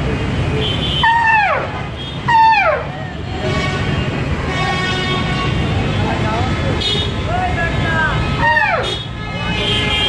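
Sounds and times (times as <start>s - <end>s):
street traffic rumble: 0.0s - 10.0s
long vehicle horn: 2.3s - 5.9s, 8.1s - 10.0s.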